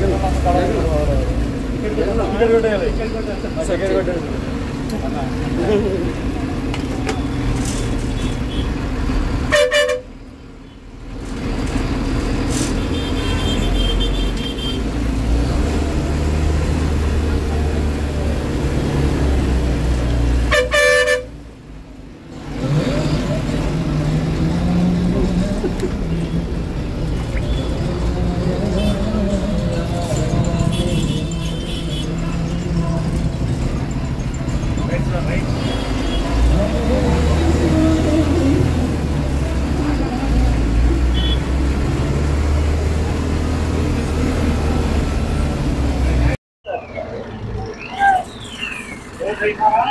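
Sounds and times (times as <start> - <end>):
bus engine running: 0.0 - 46.4
road rumble: 0.0 - 49.9
bus horn blast: 9.5 - 10.2, 12.8 - 14.9, 20.4 - 21.4, 41.0 - 41.6.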